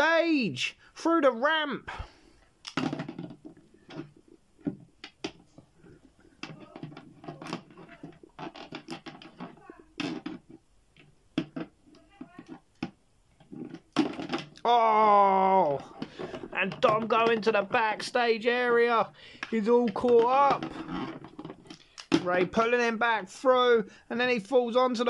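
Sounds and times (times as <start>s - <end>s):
plastic toys clicking and tapping: 2.6s - 14.7s, 15.6s - 22.9s.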